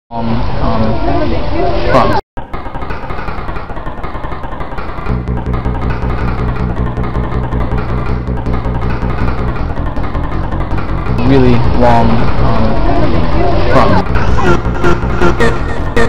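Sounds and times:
steady bass line: 3.4s - 16.0s
remix music of chopped voice samples: 11.2s - 16.0s.

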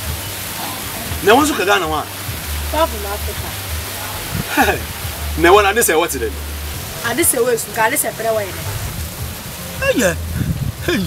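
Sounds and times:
voices talking: 0.0s - 9.0s, 9.6s - 11.0s
background hiss: 0.0s - 11.0s.

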